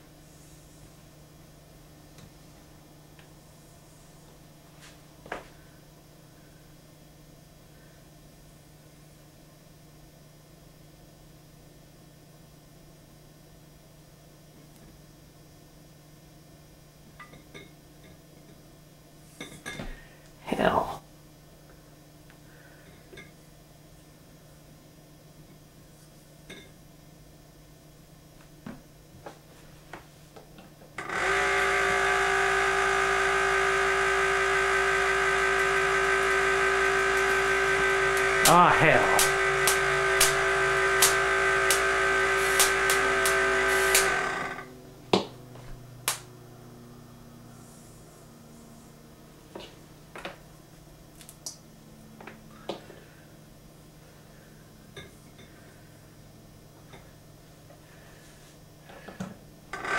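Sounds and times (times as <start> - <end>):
steady low hum: 15.0 - 59.7
sharp electric snaps: 31.0 - 44.6, 46.0 - 46.3
electrostatic generator humming: 31.0 - 47.4.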